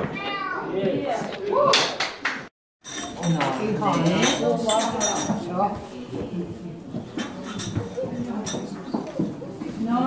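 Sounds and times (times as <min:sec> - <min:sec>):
cups saucers and cutlery clinking: 0:02.8 - 0:10.0.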